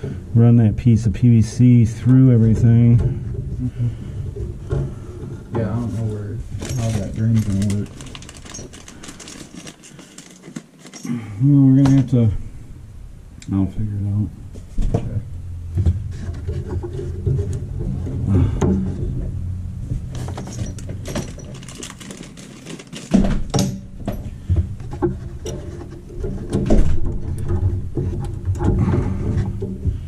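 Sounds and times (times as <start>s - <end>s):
steady low hum: 0.0s - 30.0s
clicks taps and rustles: 2.0s - 11.1s, 14.5s - 30.0s.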